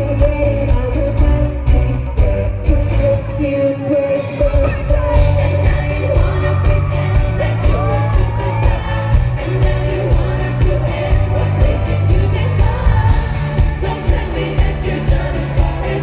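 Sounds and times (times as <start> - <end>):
live pop music with female vocals: 0.0 - 16.0.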